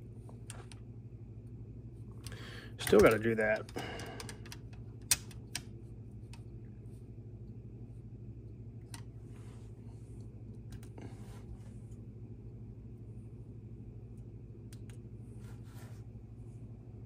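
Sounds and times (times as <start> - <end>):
steady low hum: 0.0 - 17.0
soft rubbing: 15.2 - 16.7.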